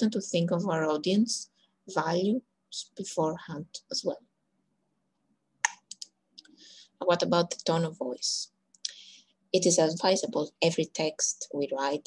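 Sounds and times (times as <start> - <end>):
intake of breath: 6.5 - 7.0.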